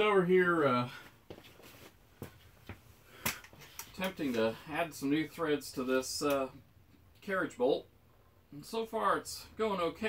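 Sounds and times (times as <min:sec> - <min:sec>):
faint shuffling footsteps: 0:00.5 - 0:05.1.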